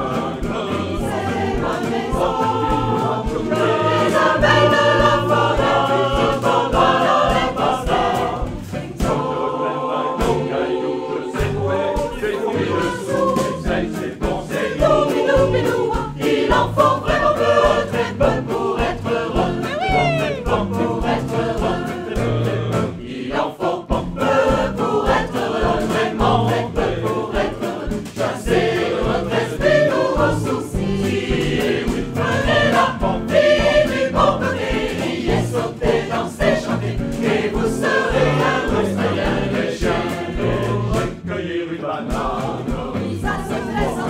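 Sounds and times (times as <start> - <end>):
bouncing bass line: 0.0 - 9.1, 12.7 - 22.9
mixed choir singing: 0.0 - 44.0.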